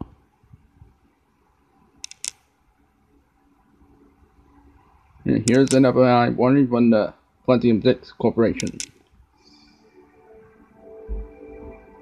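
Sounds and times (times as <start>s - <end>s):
short sharp clicks: 8.6s - 9.1s.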